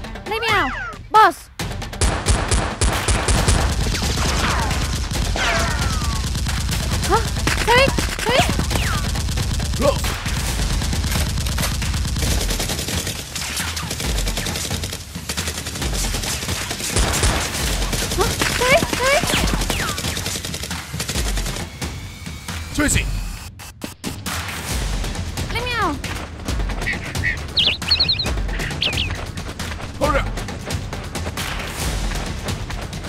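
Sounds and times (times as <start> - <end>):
rapid automatic gunfire: 2.0 - 22.6, 27.0 - 30.2.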